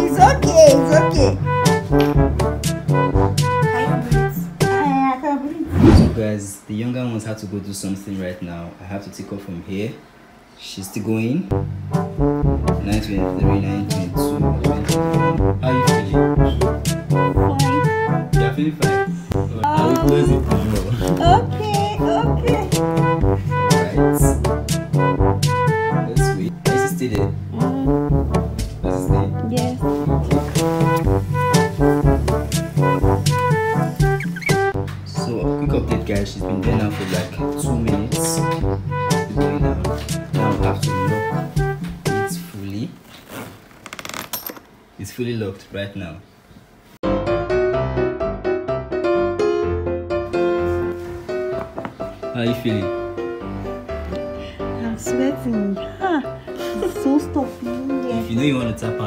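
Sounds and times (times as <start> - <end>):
music with stepping bass line: 11.6 - 12.9, 28.1 - 35.0.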